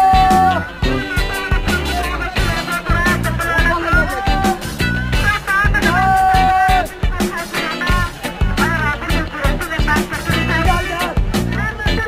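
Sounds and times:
bass line: 0.0 - 12.0
upbeat music with drum beat: 0.0 - 12.0.

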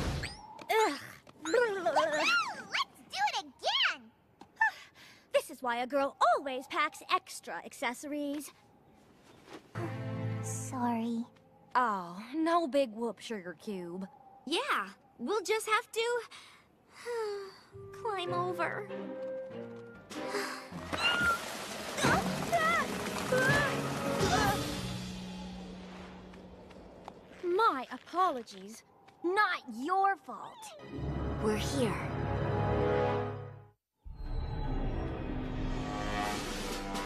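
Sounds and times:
background music: 9.8 - 11.4, 17.7 - 26.0, 30.7 - 37.0
cartoon avalanche rush: 20.9 - 26.3.

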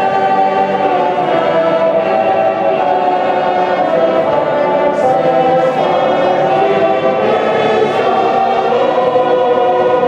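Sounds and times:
stadium crowd singing: 0.0 - 10.0.

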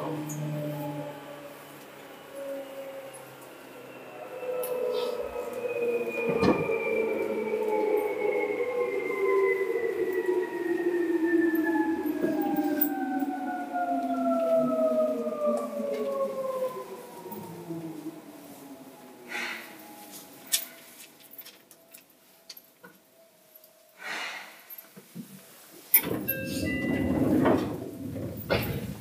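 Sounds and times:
electric train motor whine: 0.0 - 22.5.

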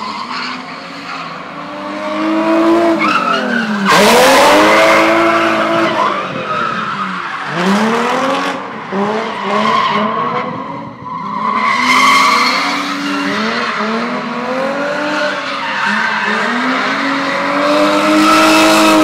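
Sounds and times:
car engine revving: 1.6 - 10.7, 11.6 - 19.0.

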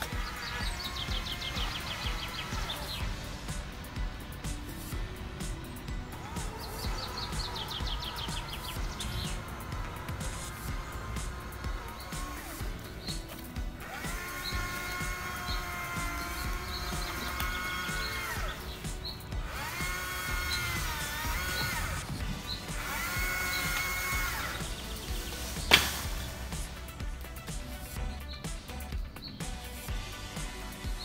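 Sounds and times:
chainsaw revving: 0.0 - 31.0
sharp knock: 25.7 - 26.2.

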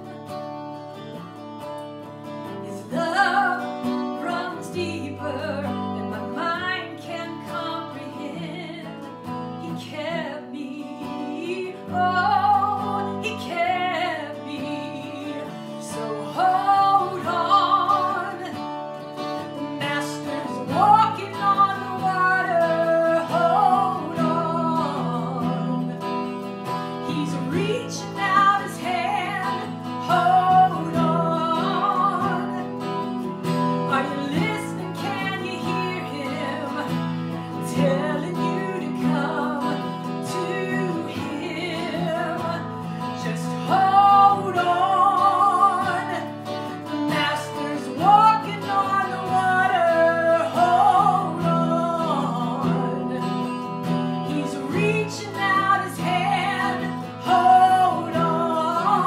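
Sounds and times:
woman singing with vibrato: 2.5 - 59.0.

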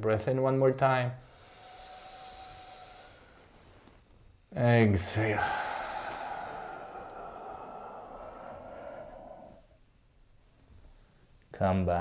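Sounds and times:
man breathing in deeply: 1.2 - 4.0, 5.0 - 10.0.

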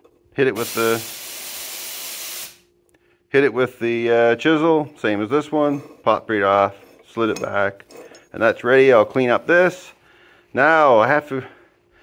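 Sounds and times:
steady hiss: 0.5 - 2.7.

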